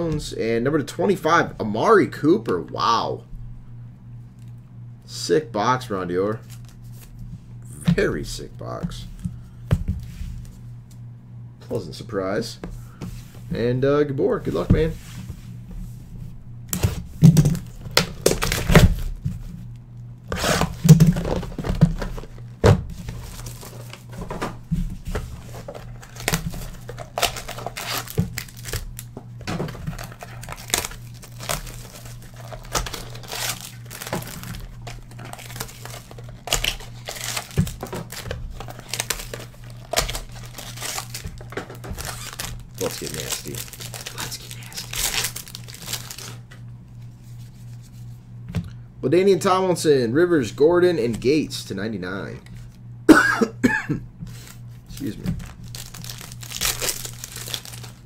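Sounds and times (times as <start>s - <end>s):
shrink-wrap crinkling and tearing: 16.8s - 19.2s, 20.3s - 24.2s, 25.4s - 46.4s, 54.3s - 58.0s.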